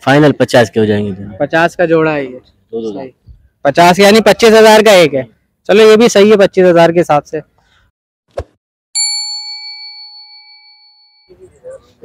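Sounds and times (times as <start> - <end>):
bell ding: 9.0 - 11.3.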